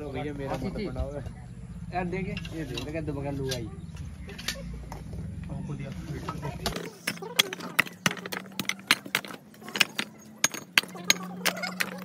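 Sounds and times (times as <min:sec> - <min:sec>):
bricks clinking together: 0:06.6 - 0:12.0.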